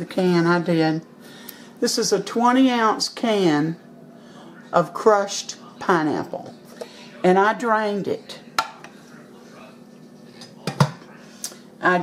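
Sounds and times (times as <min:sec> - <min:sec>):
kitchenware knocks: 0:10.6 - 0:11.0.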